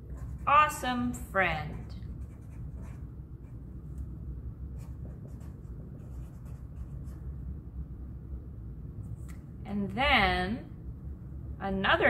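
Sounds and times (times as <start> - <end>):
marker writing on paper: 1.7 - 3.0, 4.8 - 7.2.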